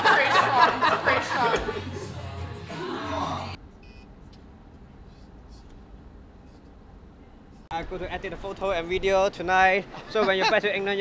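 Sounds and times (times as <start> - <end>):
background music: 0.0 - 3.6.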